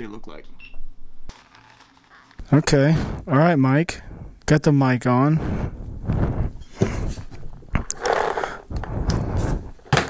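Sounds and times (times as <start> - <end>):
microphone handling bumps and rubbing: 5.5 - 10.0.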